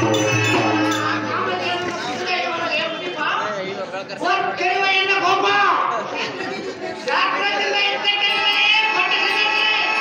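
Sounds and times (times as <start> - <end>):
babble of chatter: 0.0 - 10.0.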